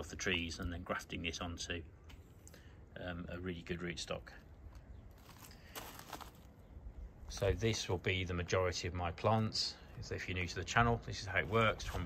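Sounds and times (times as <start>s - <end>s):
low steady rumble: 0.0s - 12.0s
faint crunching: 4.2s - 7.9s.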